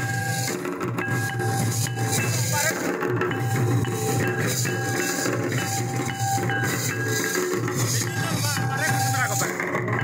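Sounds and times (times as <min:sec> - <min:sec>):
barrel drums playing fast rhythm: 0:00.0 - 0:10.0
high held tone: 0:00.0 - 0:10.0
small percussion rattling: 0:00.0 - 0:10.0.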